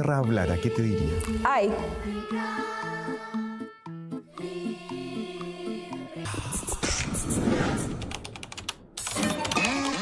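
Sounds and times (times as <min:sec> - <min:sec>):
rapid sharp clicks: 0:07.9 - 0:10.0.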